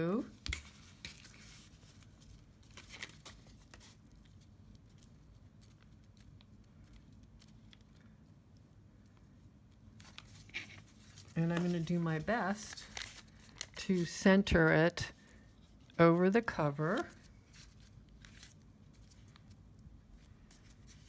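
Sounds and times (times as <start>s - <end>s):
low steady hum: 0.0s - 21.0s
paper rustling: 0.4s - 8.1s, 9.9s - 14.2s, 15.2s - 21.0s.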